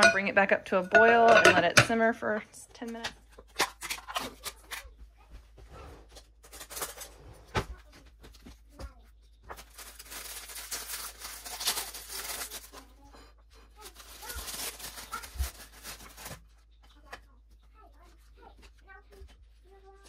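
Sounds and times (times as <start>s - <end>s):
paper wrapping torn and crinkled: 3.4s - 4.9s, 6.1s - 8.0s, 9.5s - 13.1s, 13.7s - 17.1s.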